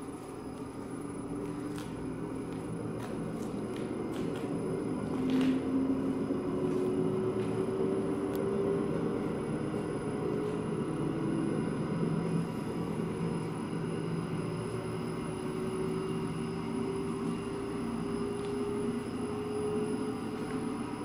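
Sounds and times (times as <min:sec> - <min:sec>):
centrifuge hum with rising whine: 0:00.0 - 0:21.0.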